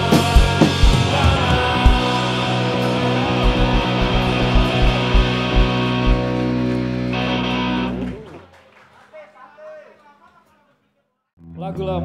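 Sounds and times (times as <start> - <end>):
heavy drum hits: 0.0 - 6.6
live rock band playing: 0.0 - 8.4
electric guitar chord ringing: 2.0 - 8.2.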